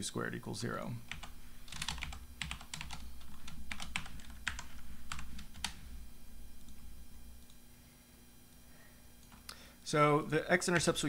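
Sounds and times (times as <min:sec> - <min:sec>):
computer keyboard typing: 0:01.1 - 0:05.8.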